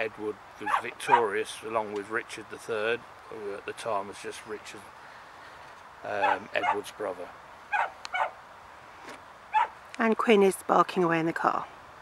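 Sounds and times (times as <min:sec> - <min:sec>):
dog barking: 0:00.6 - 0:01.3, 0:06.2 - 0:06.8, 0:07.7 - 0:08.4, 0:09.5 - 0:09.7.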